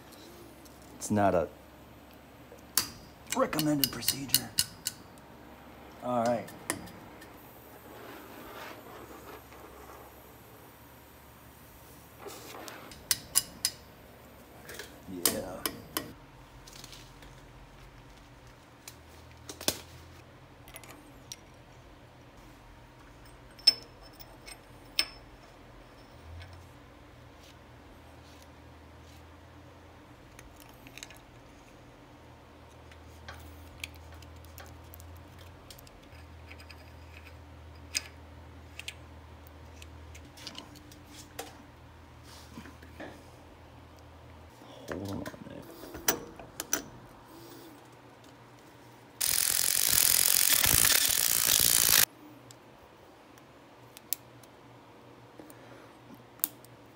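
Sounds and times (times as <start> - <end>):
faint steady hum: 0.0 - 56.9.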